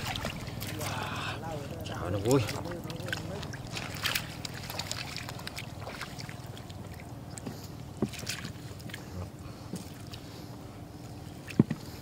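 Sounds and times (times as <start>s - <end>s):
water splashing around boots: 0.0s - 10.5s.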